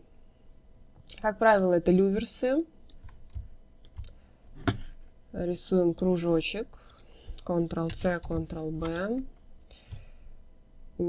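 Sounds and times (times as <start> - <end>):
computer mouse clicks: 2.2 - 4.2, 6.7 - 9.1.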